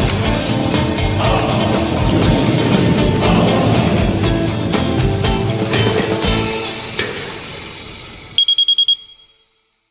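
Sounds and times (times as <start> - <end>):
background music: 0.0 - 8.4
short high electronic beeps: 8.4 - 9.5.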